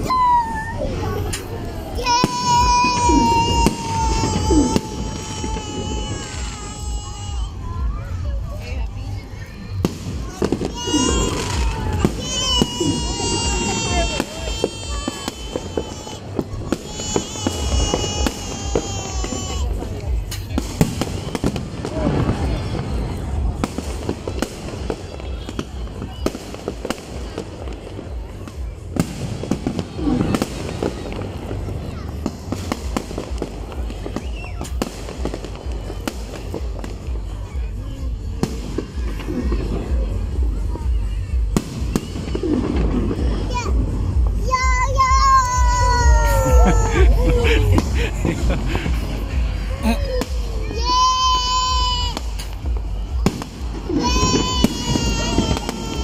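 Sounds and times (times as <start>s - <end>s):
constant low rumble: 0.0s - 56.0s
fireworks bangs and crackling: 0.0s - 56.0s
falling firework whistles: 32.2s - 37.7s.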